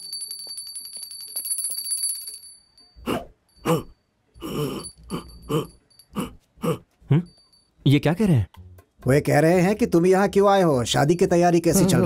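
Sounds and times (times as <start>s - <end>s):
small hand bell ringing rapidly: 0.0s - 3.6s.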